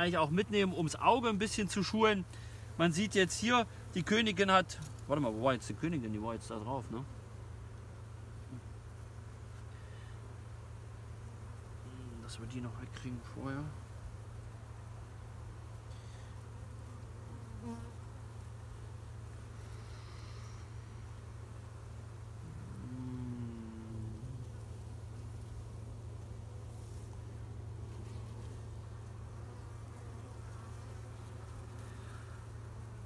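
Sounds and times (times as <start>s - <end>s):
bees humming: 0.0s - 33.0s
louder bee buzz: 15.7s - 33.0s.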